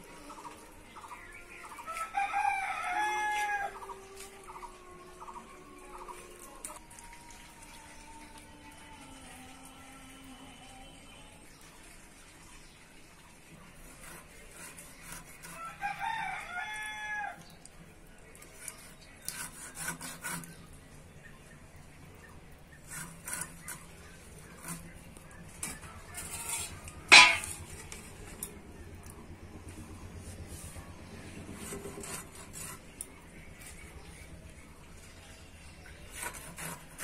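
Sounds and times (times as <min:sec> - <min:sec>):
rooster crowing: 0:01.6 - 0:06.2, 0:15.6 - 0:17.4.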